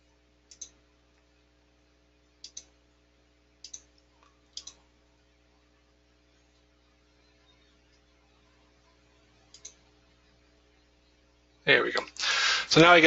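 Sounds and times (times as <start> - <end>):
faint steady hum: 0.0 - 13.0
computer mouse clicks: 0.5 - 0.8, 2.4 - 2.7, 3.6 - 4.8, 9.5 - 9.8.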